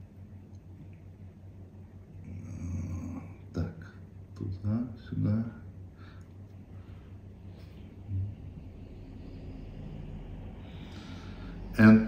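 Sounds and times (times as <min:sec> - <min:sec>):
steady low hum: 0:00.0 - 0:12.0
person breathing: 0:05.9 - 0:11.8.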